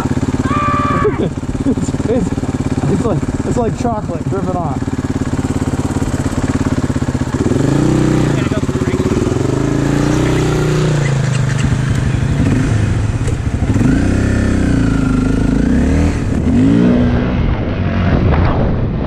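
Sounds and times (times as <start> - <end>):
dirt bike engine revving: 0.0 - 18.4.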